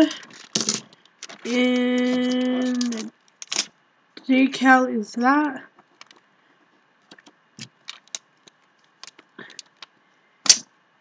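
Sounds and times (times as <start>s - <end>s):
plastic packaging crinkling: 0.2s - 3.7s, 7.1s - 9.9s.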